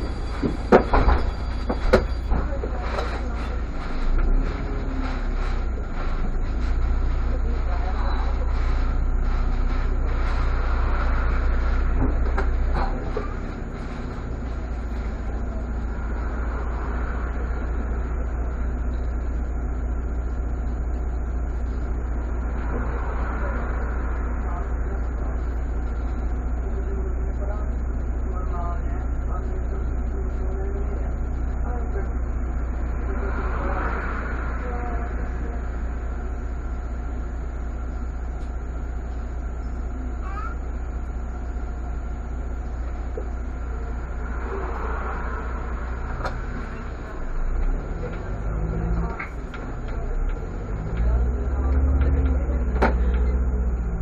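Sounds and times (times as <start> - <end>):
bus engine idling: 0.0 - 54.0.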